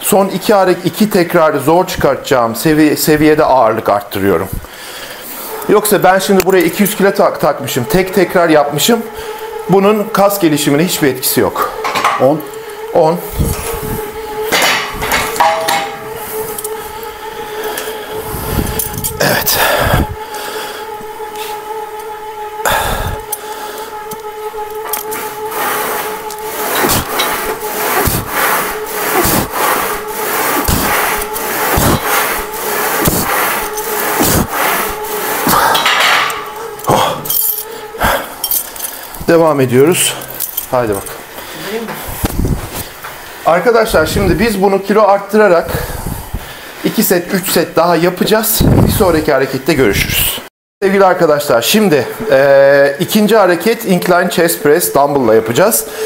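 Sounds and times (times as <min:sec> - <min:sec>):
steady hum: 0:00.0 - 0:56.0
weight plates clanking: 0:14.5 - 0:16.2, 0:35.5 - 0:37.6.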